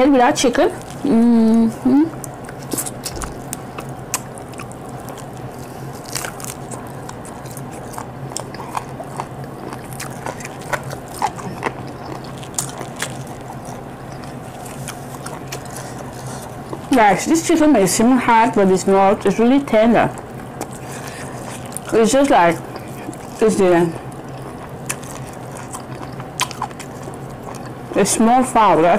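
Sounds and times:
faint low hum: 0:00.0 - 0:28.9
mouth chewing wet smacks: 0:00.8 - 0:17.0, 0:20.1 - 0:28.0.

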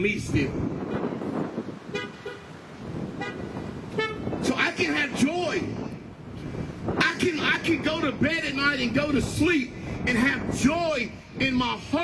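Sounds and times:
car horns tooting: 0:00.8 - 0:04.5.

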